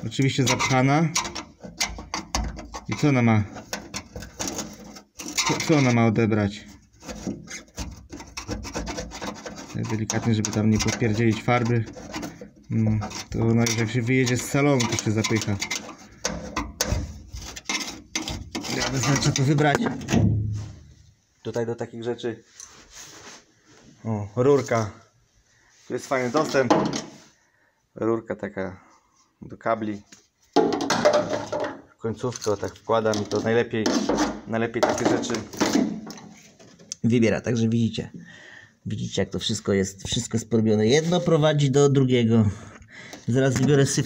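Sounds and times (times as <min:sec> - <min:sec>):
man talking: 0:00.0 - 0:01.3, 0:02.8 - 0:03.6, 0:05.4 - 0:06.8, 0:09.7 - 0:12.0, 0:12.6 - 0:15.9, 0:18.6 - 0:20.2, 0:21.4 - 0:22.5, 0:24.0 - 0:25.1, 0:25.9 - 0:27.1, 0:28.0 - 0:30.2, 0:31.2 - 0:35.7, 0:36.9 - 0:44.0
metal tool scraping dirt: 0:00.0 - 0:20.7.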